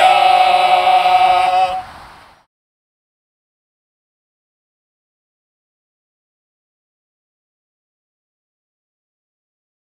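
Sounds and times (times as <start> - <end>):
men singing a cappella: 0.0 - 1.8.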